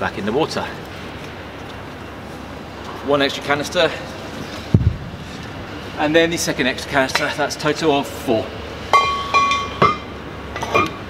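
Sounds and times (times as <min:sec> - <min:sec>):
metal cylinders clinking: 0:08.9 - 0:11.0.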